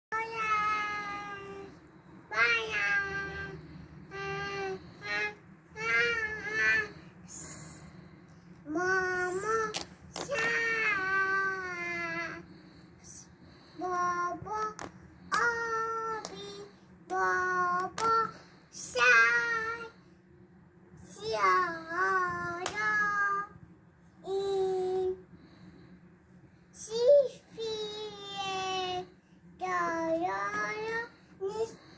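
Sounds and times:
girl singing: 2.3s - 7.5s, 8.7s - 12.4s.

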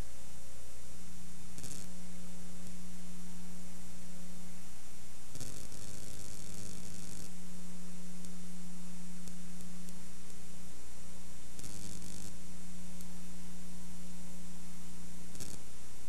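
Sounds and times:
electrical mains hum and buzz: 0.0s - 16.0s.

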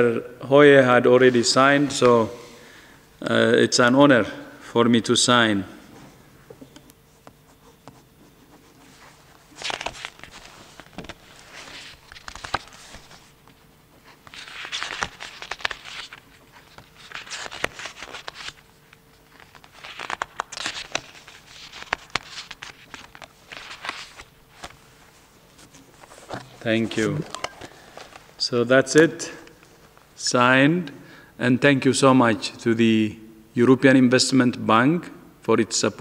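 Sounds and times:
paper rustling: 7.1s - 28.4s.

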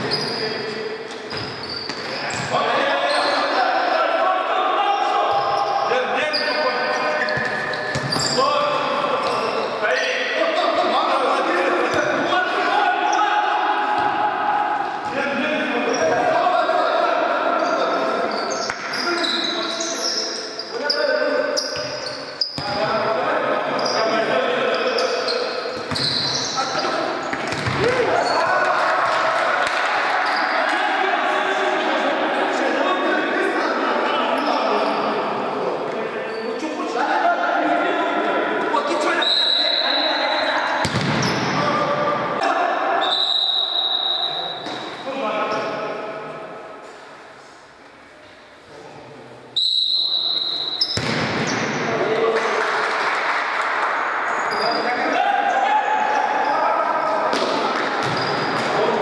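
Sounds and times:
players shouting: 2.2s - 7.1s, 10.2s - 20.1s, 27.7s - 34.5s
ball kicked and bouncing: 7.4s - 8.2s, 27.3s - 27.8s, 50.9s - 51.4s, 57.3s - 58.7s.

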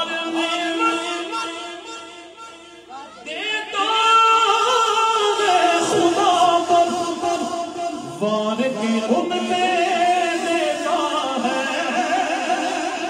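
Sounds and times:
man singing into a microphone: 0.0s - 13.0s.

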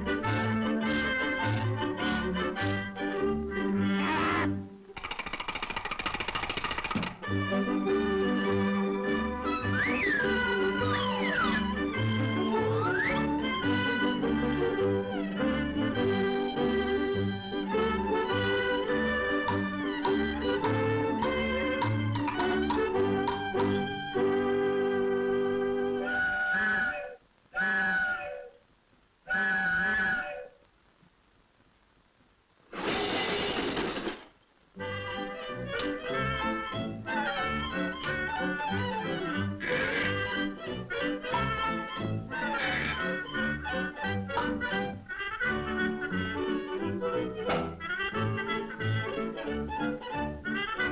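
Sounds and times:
music: 0.0s - 5.0s, 7.0s - 28.3s, 29.3s - 30.4s, 34.8s - 50.9s
drawn-out animal-like vocal calls: 3.8s - 7.2s, 9.8s - 11.7s, 26.0s - 28.6s, 29.3s - 30.6s, 39.1s - 40.5s, 42.3s - 44.0s
rapid mechanical rattle: 5.0s - 7.2s.

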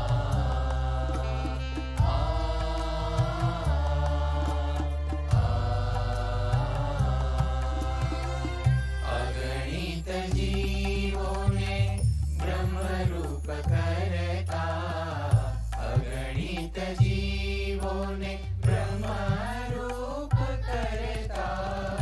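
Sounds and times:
group singing in unison: 0.0s - 22.0s.

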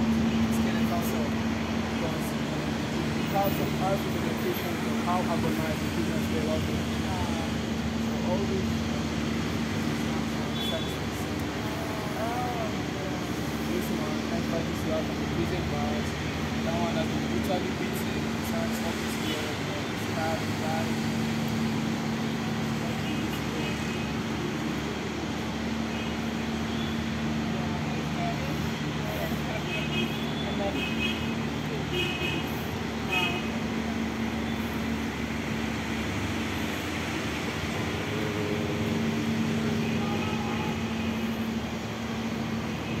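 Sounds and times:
people talking: 0.0s - 21.0s, 22.6s - 25.0s, 27.4s - 32.2s
traffic noise: 0.0s - 43.0s.

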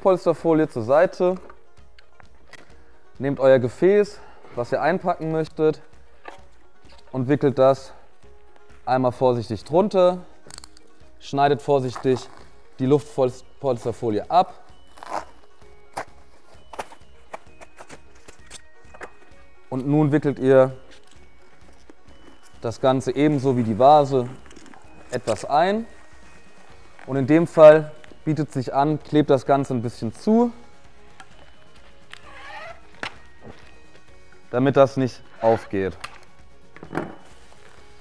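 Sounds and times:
quiet background music: 0.0s - 38.0s.

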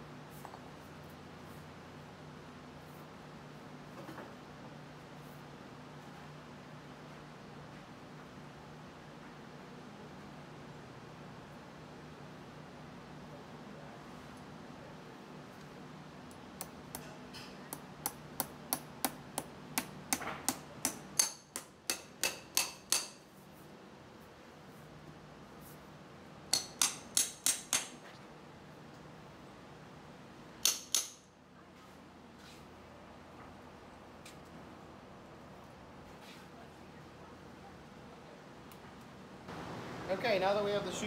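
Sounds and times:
hammer tapping horseshoe nails: 16.6s - 23.2s, 26.5s - 28.0s, 30.6s - 31.3s.

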